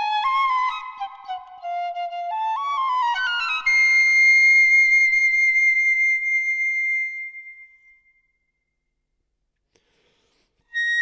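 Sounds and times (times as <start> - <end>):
solo piccolo melody: 0.0 - 8.3, 10.7 - 11.0.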